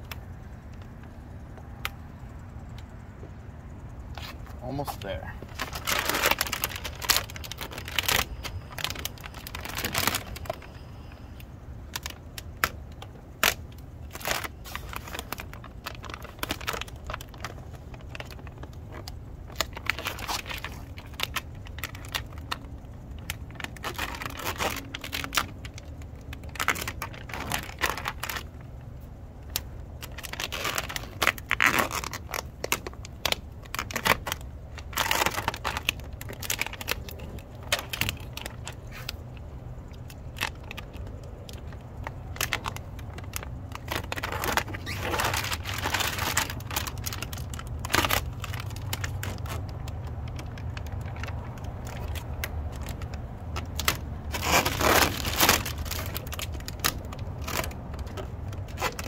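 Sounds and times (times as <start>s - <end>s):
steady low hum: 0.0s - 59.0s
plastic film crinkling: 4.2s - 59.0s.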